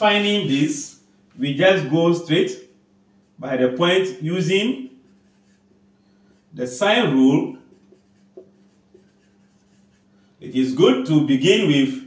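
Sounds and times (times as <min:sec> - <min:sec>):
low steady hum: 0:00.0 - 0:12.0
marker writing on whiteboard: 0:04.8 - 0:10.1.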